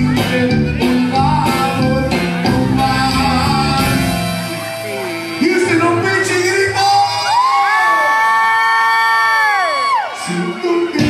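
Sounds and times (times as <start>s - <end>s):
accordion: 0.0s - 6.8s
bass: 0.0s - 7.5s
high whooping yell: 7.1s - 10.3s.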